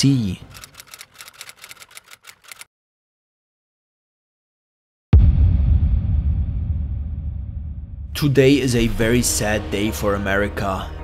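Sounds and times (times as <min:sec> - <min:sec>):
typewriter-like key clicks: 0:00.4 - 0:02.7.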